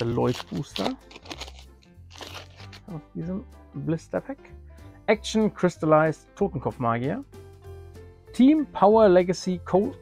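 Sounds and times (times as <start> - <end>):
plastic foil pack crinkling: 0.0 - 3.0
quiet background music: 0.0 - 10.0.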